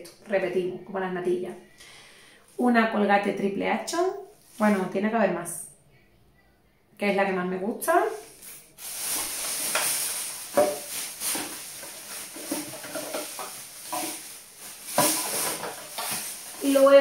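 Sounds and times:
plastic bottles rustling and clattering: 8.1 - 17.0
plastic containers knocking together: 9.6 - 16.6.

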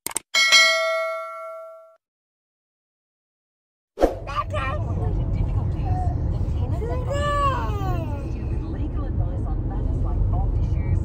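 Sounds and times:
road rumble inside car: 4.2 - 11.0.

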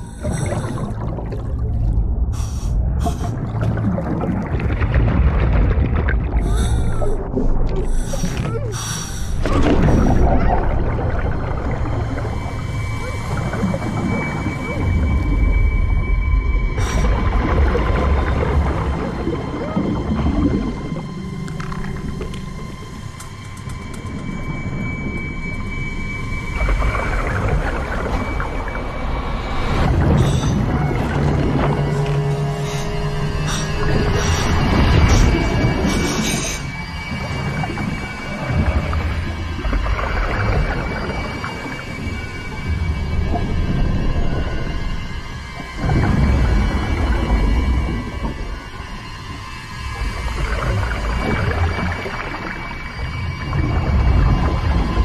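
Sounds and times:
bubbling exhaust underwater: 0.0 - 55.0
steady low rumble: 0.0 - 55.0
water noise: 0.0 - 55.0
regulator hissing breaths: 7.9 - 9.4.

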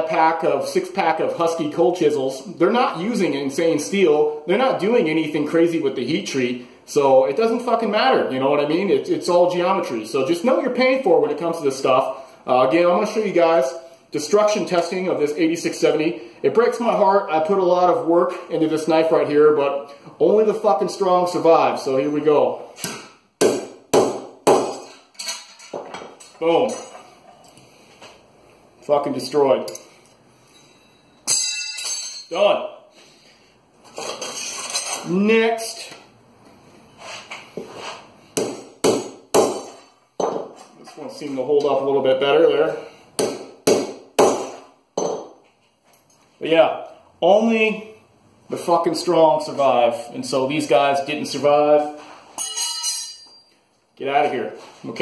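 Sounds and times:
metal knife blades clattering: 25.0 - 27.0, 31.3 - 32.3, 52.4 - 53.4
hammer striking knife blade: 31.2 - 32.3.

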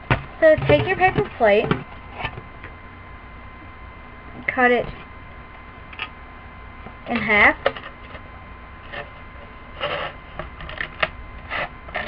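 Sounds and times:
faint high electrical whine: 0.0 - 12.0.

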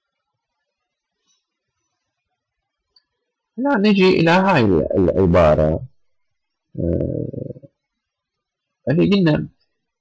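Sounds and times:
man humming hesitantly: 6.8 - 7.7.

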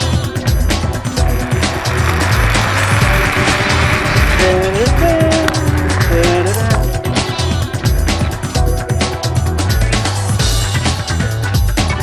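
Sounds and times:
background music with steady beat: 0.0 - 12.0
zipline pulleys whirring on cable: 1.2 - 6.5.

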